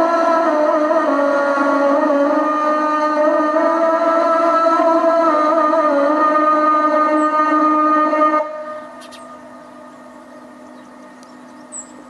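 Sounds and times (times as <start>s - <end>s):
call to prayer over loudspeaker: 0.0s - 9.5s.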